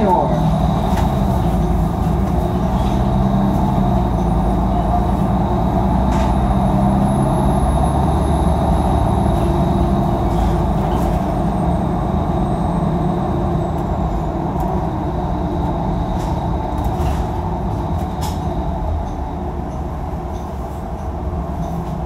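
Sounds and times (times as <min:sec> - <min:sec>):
bus engine drone: 0:00.0 - 0:22.0
road noise: 0:00.0 - 0:22.0.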